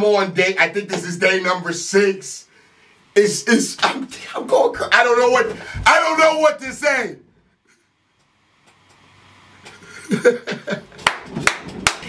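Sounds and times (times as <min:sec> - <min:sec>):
man laughing: 0:09.8 - 0:11.1.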